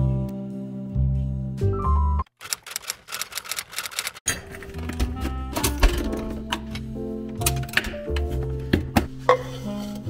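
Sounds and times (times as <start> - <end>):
background music: 0.0 - 2.2, 4.3 - 10.0
typewriter typing clicks: 2.3 - 4.9.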